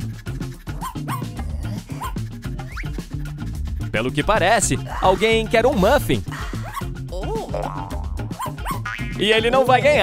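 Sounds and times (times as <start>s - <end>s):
music with a steady beat: 0.0s - 10.0s
small dog whimpering: 0.8s - 2.2s, 8.4s - 8.8s.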